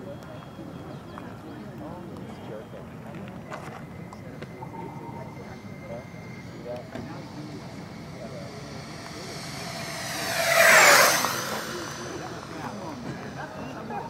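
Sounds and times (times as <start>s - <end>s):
electric ducted fans whining: 4.5s - 14.0s.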